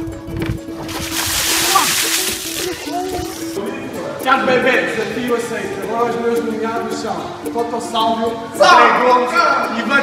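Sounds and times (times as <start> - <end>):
background music: 0.0 - 10.0
ice water splash: 0.8 - 3.6.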